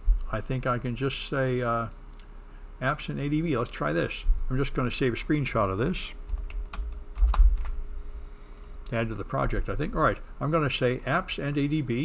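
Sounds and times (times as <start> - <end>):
computer keyboard clicks: 6.3 - 7.8.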